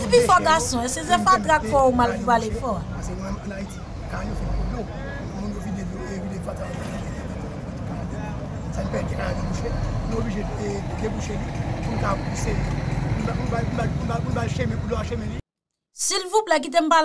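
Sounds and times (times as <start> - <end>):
low engine rumble: 0.0 - 15.4
man speaking: 0.0 - 15.4.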